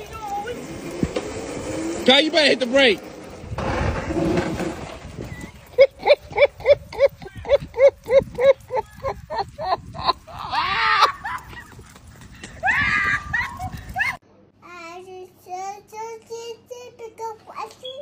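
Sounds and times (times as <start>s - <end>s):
noisy rush: 0.0s - 14.1s
person laughing hard: 5.7s - 14.2s.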